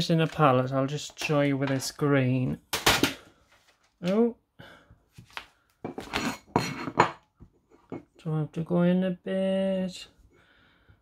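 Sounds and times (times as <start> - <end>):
porcelain palette clattering and scraping: 5.8 - 8.2.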